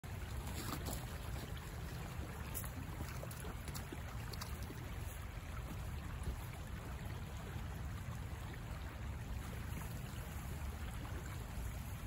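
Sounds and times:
fast-flowing creek rushing: 0.1 - 12.0.

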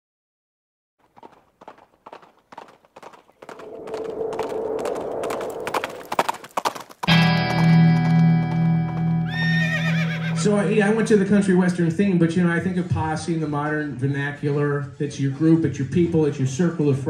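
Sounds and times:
hooves clip-clopping: 1.0 - 10.8
horse whinnying: 9.3 - 10.5.

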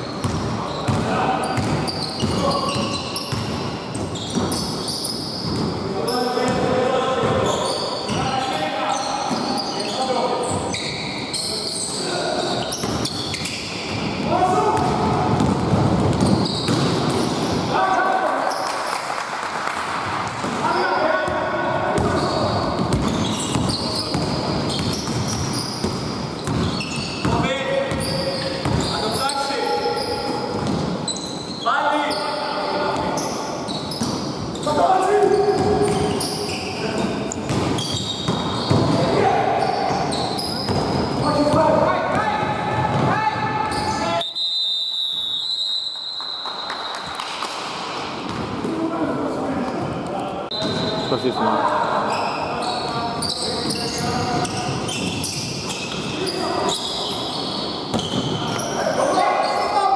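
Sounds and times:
basketball bouncing on hardwood floor: 14.8 - 17.0.

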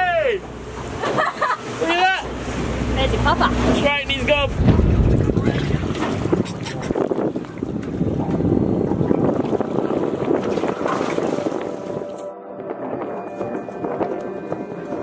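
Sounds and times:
sea noise: 0.0 - 15.0
wind buffeting microphone: 3.7 - 15.0
background music: 11.2 - 15.0.

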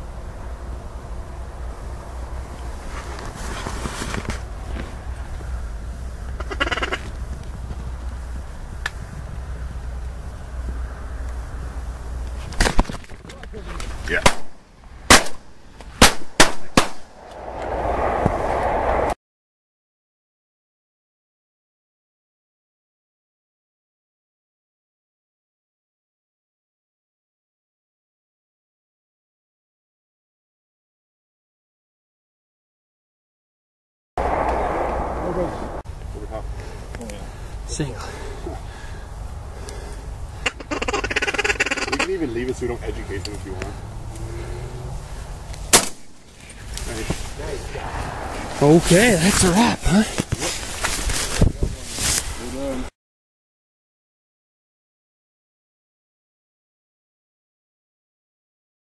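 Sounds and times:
steady rushing noise: 13.8 - 19.2, 34.2 - 40.4, 42.6 - 52.7
shotgun blasts: 14.2 - 17.1, 45.7 - 46.2
low steady rumble: 34.2 - 40.5.

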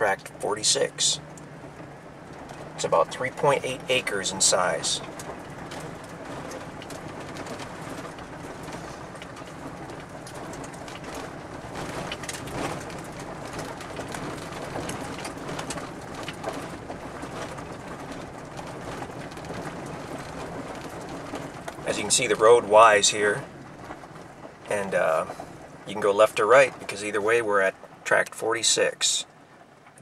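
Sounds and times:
vehicle engine and tyre noise: 0.0 - 30.0
gravel knocks and crunches: 1.2 - 28.0.

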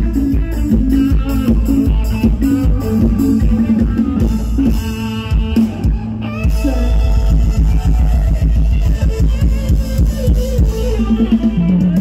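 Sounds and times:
heavy booming bass beat: 0.0 - 12.0
live band music through speakers: 0.0 - 12.0.

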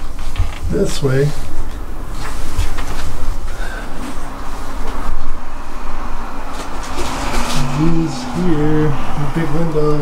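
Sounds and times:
muffled road traffic rumble: 0.0 - 10.0.

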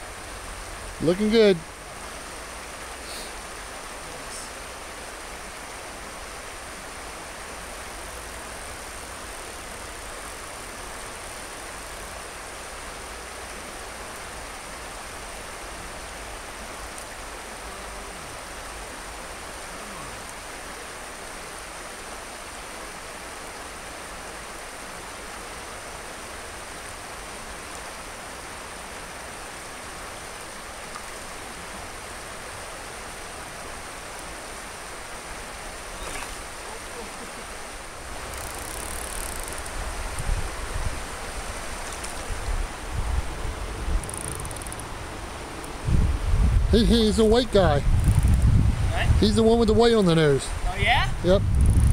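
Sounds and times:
stream water flowing: 0.0 - 51.9.

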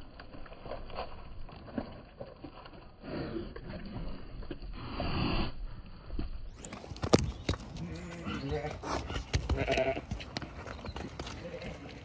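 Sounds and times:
sheep bleating: 9.5 - 10.1.

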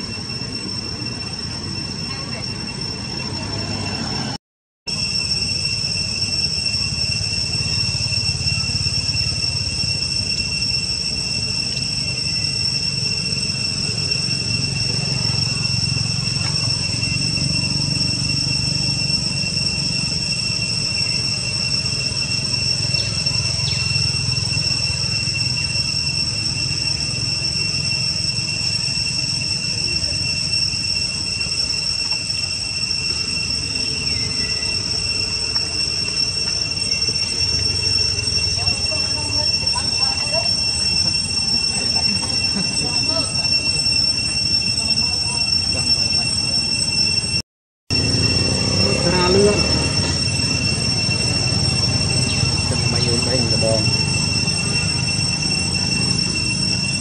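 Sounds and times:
high-pitched insect drone: 0.0 - 57.0
faint chirps: 4.9 - 47.3, 48.0 - 57.0.

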